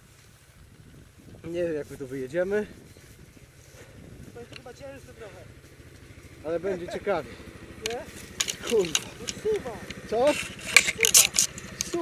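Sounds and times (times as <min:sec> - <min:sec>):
quad engine running: 0:02.3 - 0:12.0.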